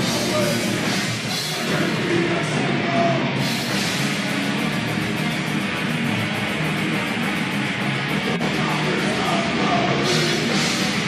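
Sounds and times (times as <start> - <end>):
distorted electric guitars: 0.0 - 11.0
drums: 0.0 - 11.0
fast cymbal strokes: 3.4 - 9.2.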